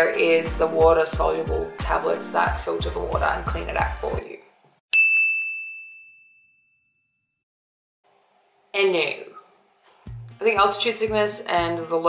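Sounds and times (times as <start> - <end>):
bell ding: 4.9 - 7.4.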